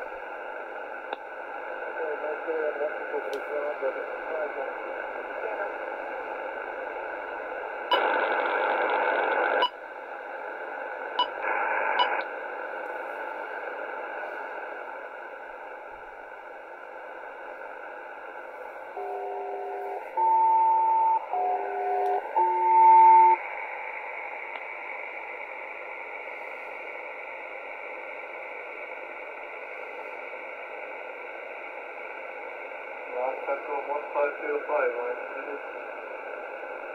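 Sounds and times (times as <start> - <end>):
radio static hiss: 0.0 - 36.9
bursts of radio noise: 7.9 - 9.6
two-tone beeps: 20.2 - 23.4.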